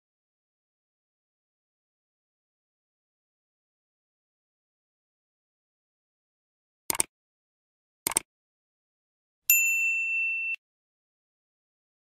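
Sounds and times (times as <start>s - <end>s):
bright bell ding: 9.5s - 10.6s.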